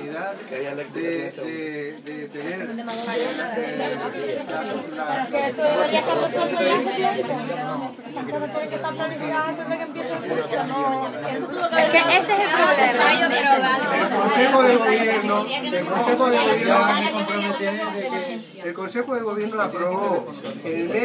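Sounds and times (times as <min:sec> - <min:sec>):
indistinct chatter: 0:00.0 - 0:21.0.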